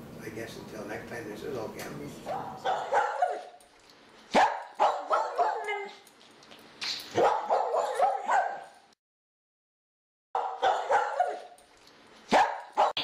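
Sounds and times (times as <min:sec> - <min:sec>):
dog barking: 0:02.3 - 0:03.6, 0:04.3 - 0:06.0, 0:07.1 - 0:08.8, 0:10.4 - 0:11.6, 0:12.3 - 0:13.0.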